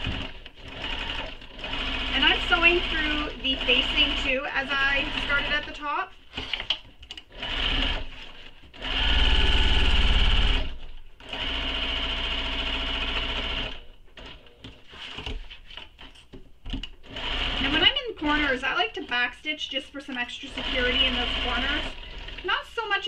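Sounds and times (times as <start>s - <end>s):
sewing machine stitching: 0.0s - 15.3s, 17.0s - 18.7s, 20.3s - 22.8s.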